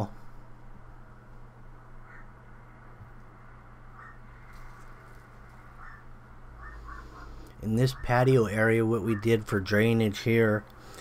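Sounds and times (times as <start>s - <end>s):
faint bird-like calls: 1.8s - 9.6s.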